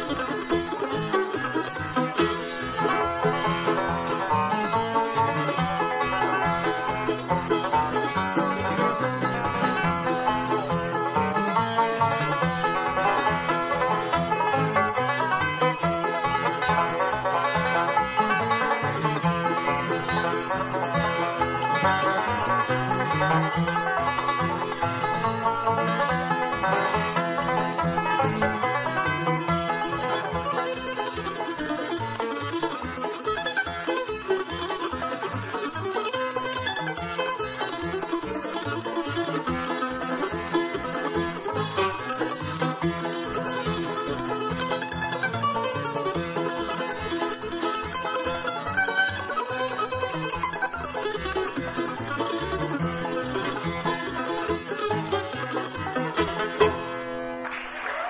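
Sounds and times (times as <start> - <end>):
bluegrass band playing: 0.0 - 58.0.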